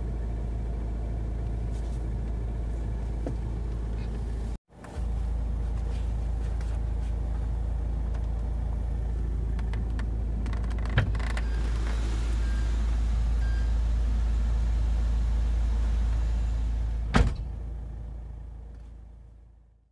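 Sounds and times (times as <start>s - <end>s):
car engine idling: 0.0s - 19.8s.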